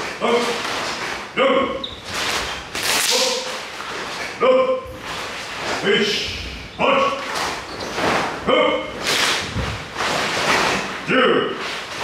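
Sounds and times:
swishing snap of arms and uniforms: 0.0 - 1.3, 9.0 - 12.0.

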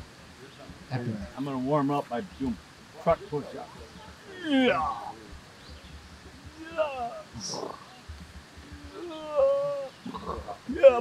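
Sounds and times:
man's high-pitched vocal exclamation: 4.3 - 5.2, 6.4 - 7.6, 8.8 - 11.0.

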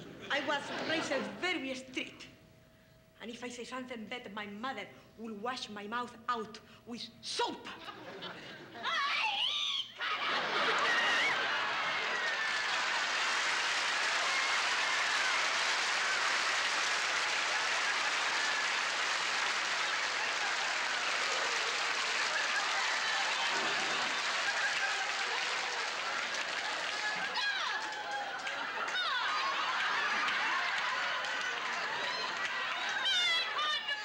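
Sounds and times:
audience laughing and applauding: 10.0 - 34.0.

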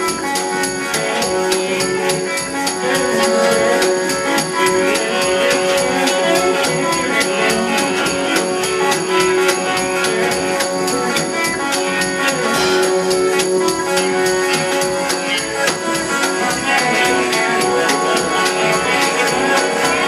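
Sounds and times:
folk-blues band playing: 0.0 - 20.0
held reed notes: 0.0 - 20.0
high ticking beat: 0.0 - 20.0.

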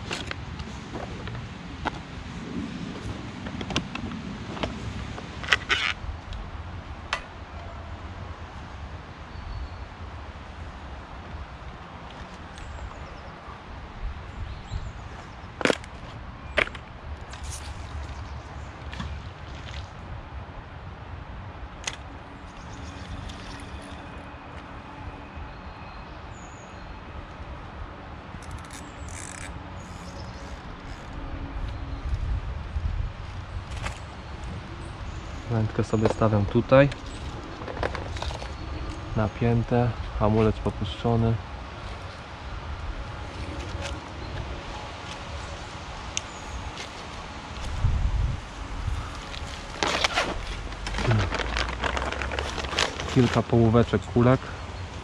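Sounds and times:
fishing tackle clicks and knocks: 36.0 - 39.0.

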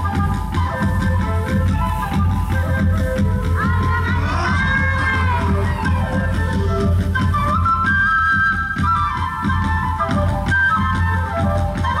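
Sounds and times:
high held melody: 1.4 - 9.9.

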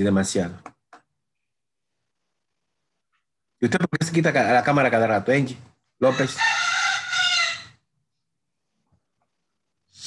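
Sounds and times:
rooster crowing: 6.0 - 7.8.

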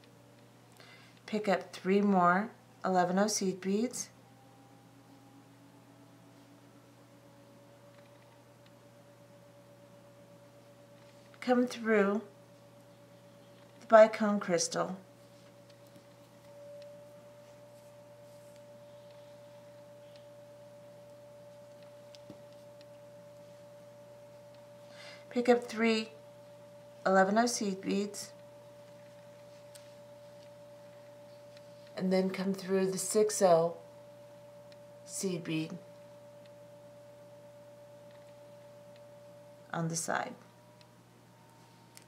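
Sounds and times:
faint high-pitched hum: 0.0 - 42.0
faint steady tone: 0.0 - 42.0
low hum: 0.0 - 42.0.

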